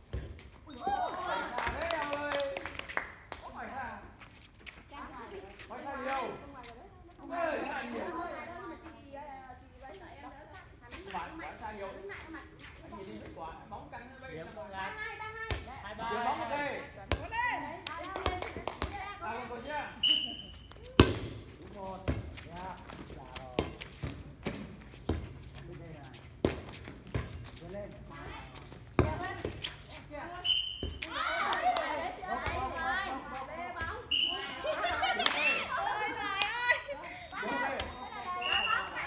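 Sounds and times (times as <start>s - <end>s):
players shouting and chatting: 30.2s - 39.0s.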